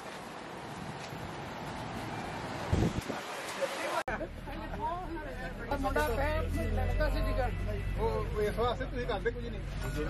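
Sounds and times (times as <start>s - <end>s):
bus engine rumble: 0.0s - 10.0s
people talking: 3.1s - 10.0s.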